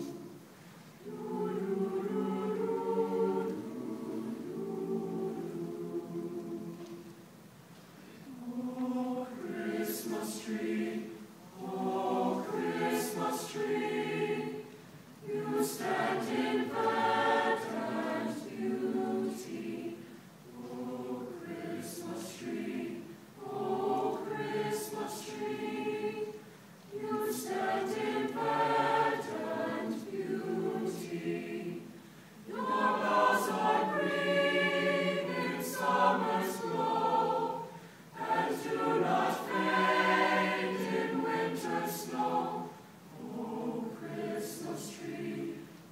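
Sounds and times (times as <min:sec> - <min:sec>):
mixed choir singing: 0:00.0 - 0:00.4, 0:01.0 - 0:07.3, 0:08.2 - 0:45.9.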